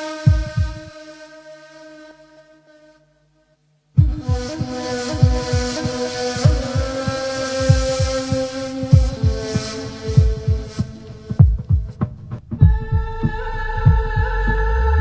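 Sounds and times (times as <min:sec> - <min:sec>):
held synth chord: 0:00.0 - 0:11.4
deep bass thumps: 0:04.0 - 0:05.7, 0:06.4 - 0:06.9, 0:08.9 - 0:09.4, 0:10.1 - 0:15.0.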